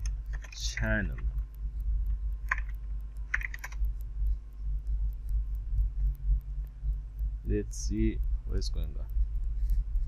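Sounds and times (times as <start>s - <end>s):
steady low hum: 0.0s - 10.0s
keyboard key clicks: 2.1s - 3.9s.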